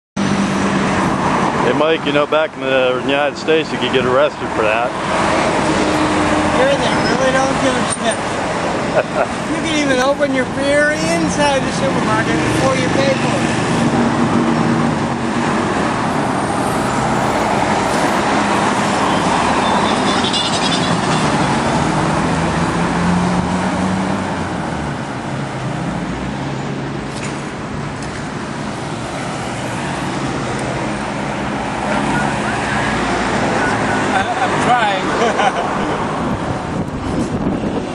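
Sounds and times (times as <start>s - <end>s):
cars driving past: 0.2s - 37.9s.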